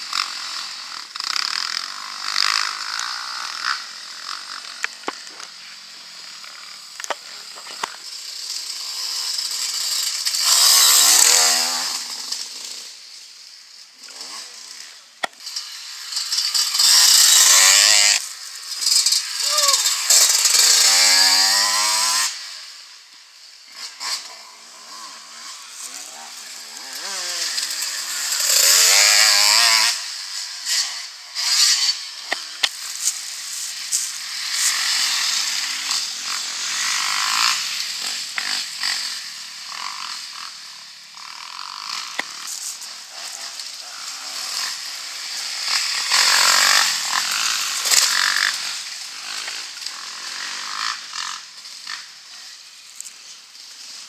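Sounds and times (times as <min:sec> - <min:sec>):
dirt bike engines revving: 0:00.0 - 0:54.0.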